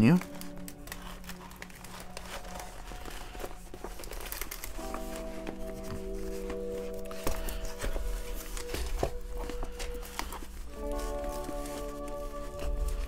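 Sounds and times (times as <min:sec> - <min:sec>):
plastic film crinkling: 0:00.0 - 0:13.0
soft background music: 0:00.0 - 0:13.0.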